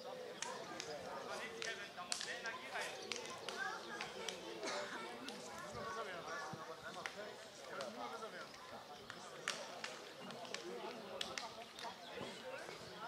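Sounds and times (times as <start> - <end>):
distant men talking: 0.0 - 13.0.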